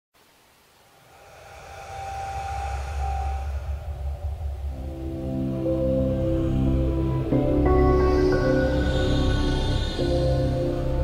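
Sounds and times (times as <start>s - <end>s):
low rumbling swell: 0.9s - 11.0s.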